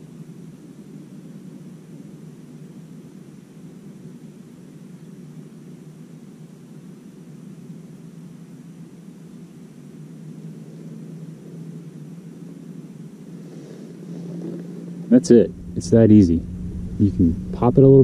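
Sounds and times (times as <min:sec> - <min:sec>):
low motor-like drone: 0:10.0 - 0:18.0.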